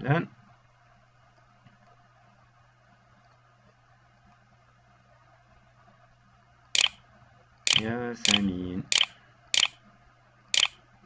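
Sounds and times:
mouse clicks: 6.8s - 7.0s, 7.7s - 9.8s, 10.6s - 10.8s.

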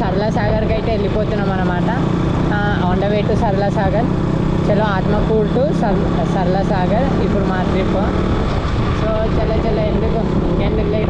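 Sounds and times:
motorcycle engine running: 0.0s - 11.0s
road rumble: 0.0s - 11.0s
wind: 0.0s - 11.0s.

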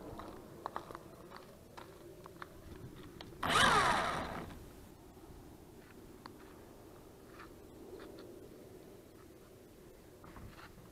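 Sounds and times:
small electric motors whirring: 3.4s - 4.6s.

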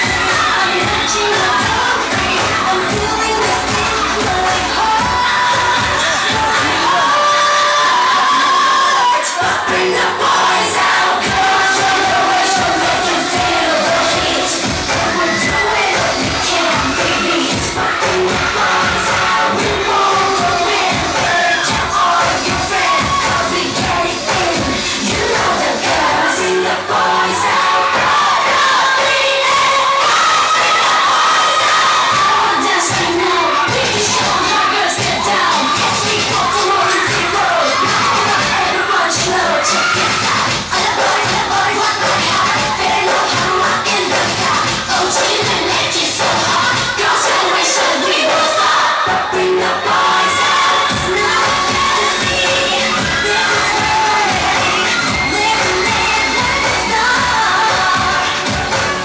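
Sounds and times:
crowd cheering and screaming: 0.0s - 59.0s
music playing: 0.0s - 59.0s.

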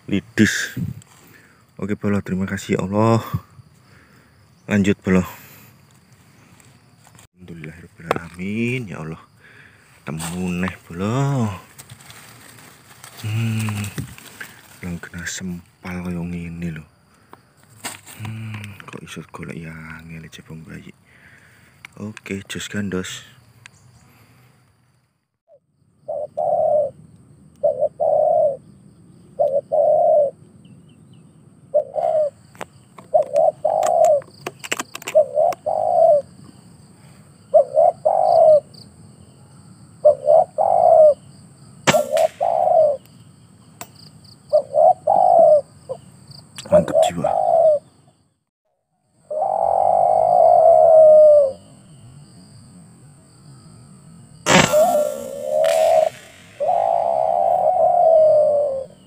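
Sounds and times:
doves cooing: 11.0s - 15.2s, 26.0s - 27.0s, 27.6s - 30.4s, 31.7s - 38.8s, 40.0s - 41.3s, 41.9s - 43.1s, 44.4s - 48.0s, 49.2s - 52.0s, 54.5s - 59.0s.

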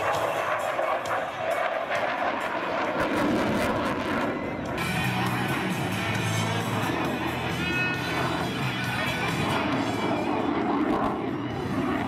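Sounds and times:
jet engines roaring overhead: 0.0s - 12.0s.

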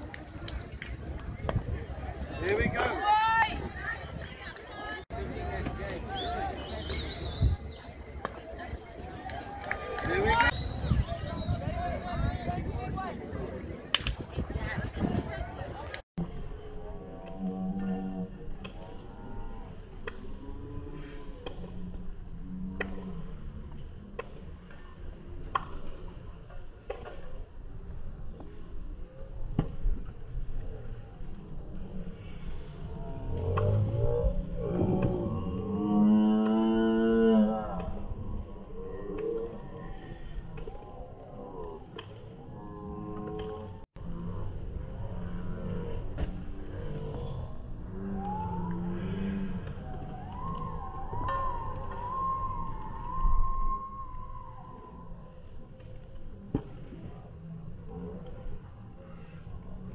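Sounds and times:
voices shouting outdoors: 1.9s - 13.4s.

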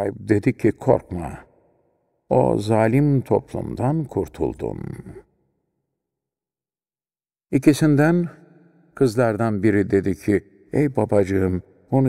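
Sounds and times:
person speaking: 2.3s - 5.3s.

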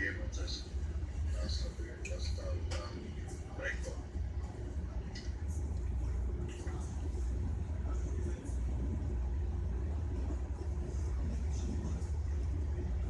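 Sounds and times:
train rumbling inside carriage: 5.6s - 13.0s.

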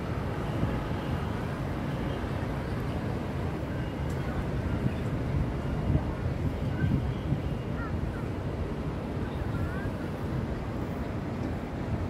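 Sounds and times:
heavy road traffic rumble: 0.0s - 12.0s
wind buffeting microphone: 0.0s - 12.0s.

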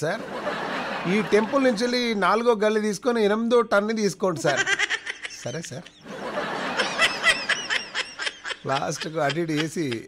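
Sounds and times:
person speaking: 1.0s - 6.0s, 8.2s - 10.0s
person laughing: 6.8s - 10.0s.

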